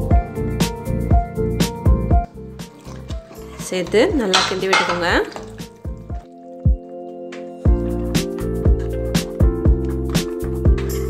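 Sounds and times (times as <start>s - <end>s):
background music with melody: 0.0s - 11.0s
ladle stirring wet mixture: 2.3s - 9.3s
metal scraping and clinking on pot: 2.6s - 6.3s.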